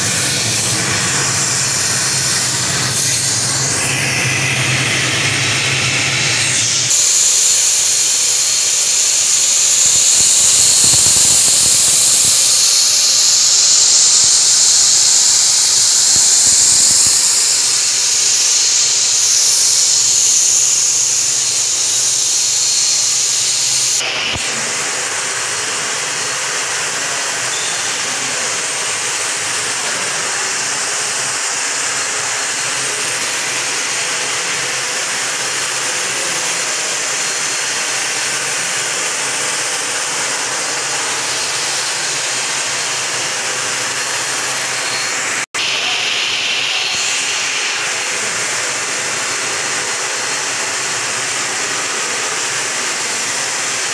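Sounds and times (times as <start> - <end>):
turbine engine hissing: 0.0 - 53.9.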